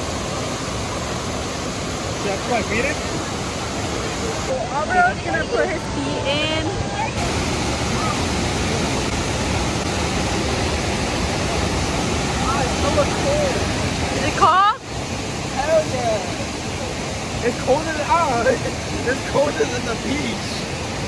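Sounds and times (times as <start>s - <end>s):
waterfall roaring: 0.0s - 21.0s.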